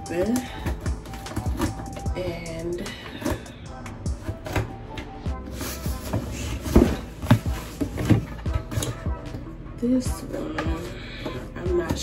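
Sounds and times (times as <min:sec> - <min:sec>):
soft background music: 0:00.0 - 0:12.0
cardboard box knocks and rustles: 0:06.0 - 0:08.9.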